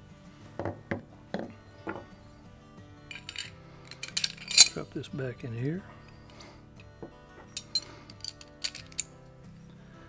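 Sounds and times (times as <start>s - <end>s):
soft background music: 0.0s - 10.0s
metal pistol parts clicking: 3.1s - 4.8s, 7.5s - 9.1s.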